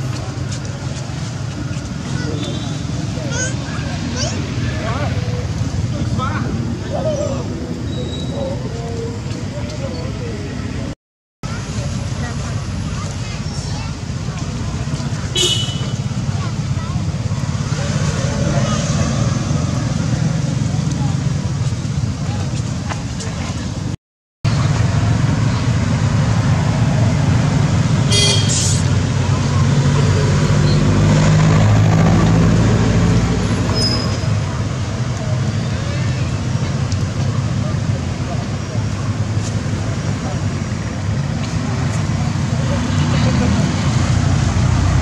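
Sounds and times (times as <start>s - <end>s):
road traffic rumble: 0.0s - 45.0s
brief high squeak: 7.8s - 8.6s, 33.7s - 34.3s.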